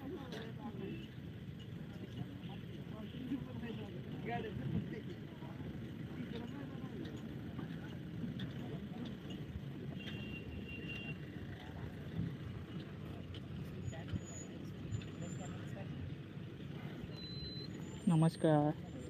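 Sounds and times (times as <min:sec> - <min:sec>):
distant people talking: 0:00.0 - 0:19.0.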